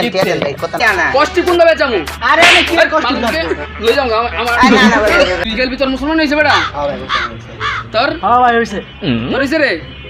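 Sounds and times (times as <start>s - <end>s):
man's voice: 0.0s - 7.4s
bird harsh calls: 6.5s - 8.0s.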